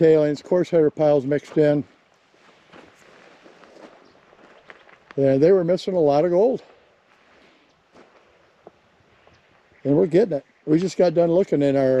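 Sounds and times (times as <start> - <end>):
faint footsteps on gravel: 0.1 - 11.9.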